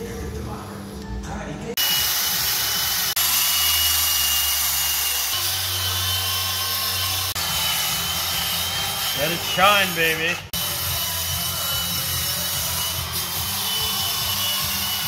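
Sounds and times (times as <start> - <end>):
drill buffing metal pipe whine: 1.8 - 15.0.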